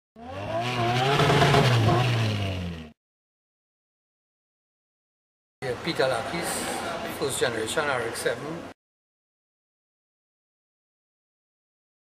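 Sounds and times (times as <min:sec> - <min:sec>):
engine revving: 0:00.2 - 0:03.0.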